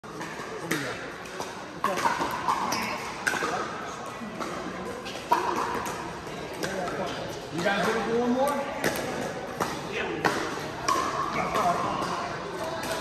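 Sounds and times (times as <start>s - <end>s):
chatter of players' voices: 0.0s - 13.0s.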